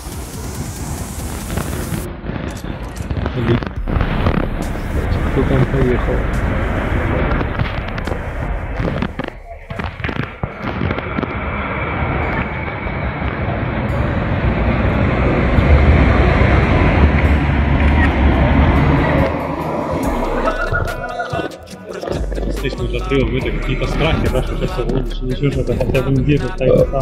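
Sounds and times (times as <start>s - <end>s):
bus passing close: 11.4s - 24.8s.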